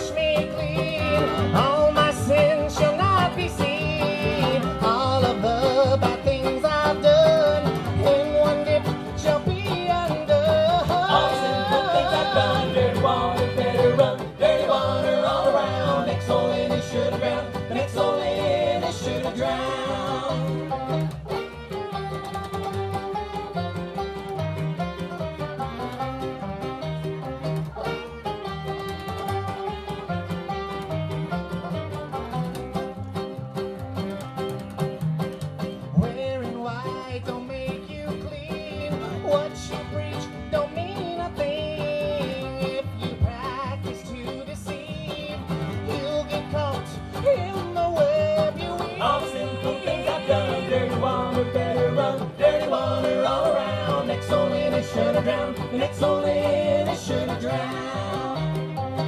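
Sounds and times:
acoustic guitar: 0:00.0 - 0:59.0
banjo: 0:00.0 - 0:59.0
fiddle: 0:00.0 - 0:59.0
mandolin: 0:00.0 - 0:59.0
upright bass: 0:00.0 - 0:59.0
clarinet: 0:18.8 - 0:34.9.

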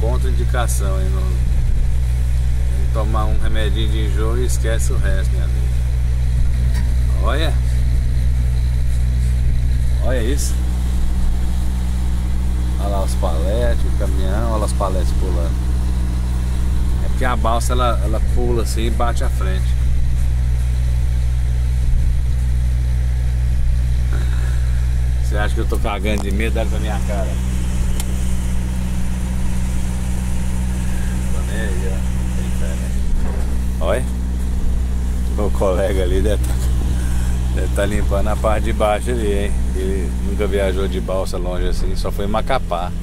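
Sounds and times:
diesel engine idling: 0:00.0 - 0:43.0.

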